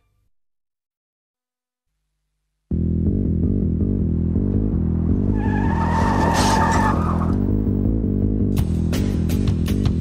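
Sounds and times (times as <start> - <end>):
bass-heavy music: 2.7 - 10.0
car tyres squealing: 4.7 - 7.8.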